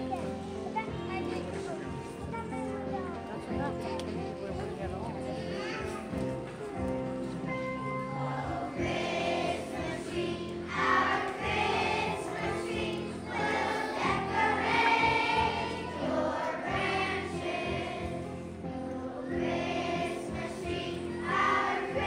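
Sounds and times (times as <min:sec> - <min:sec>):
musical accompaniment: 0:00.0 - 0:22.0
children's choir singing: 0:07.5 - 0:22.0.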